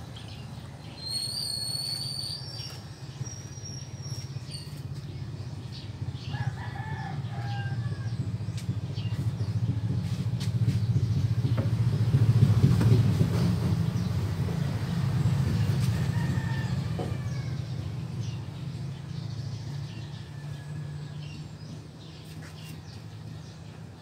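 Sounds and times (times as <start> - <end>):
low steady rumble: 2.0 - 22.0
rooster crowing: 6.3 - 8.2, 15.9 - 17.9.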